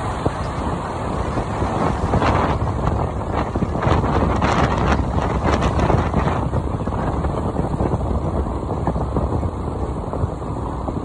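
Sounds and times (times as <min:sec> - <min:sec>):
road noise: 0:00.0 - 0:11.0
wind buffeting microphone: 0:00.0 - 0:11.0.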